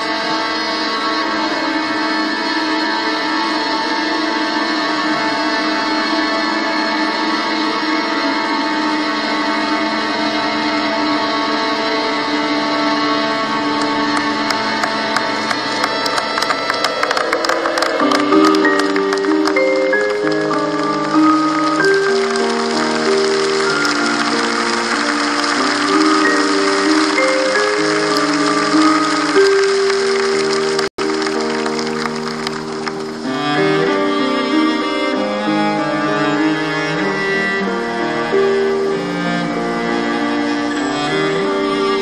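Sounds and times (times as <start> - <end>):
slow instrumental melody: 0.0 - 42.0.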